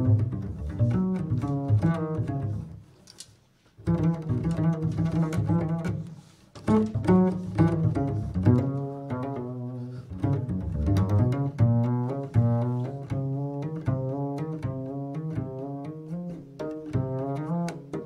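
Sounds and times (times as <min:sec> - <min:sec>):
double bass plucked pizzicato: 0:00.0 - 0:02.9, 0:03.8 - 0:18.0.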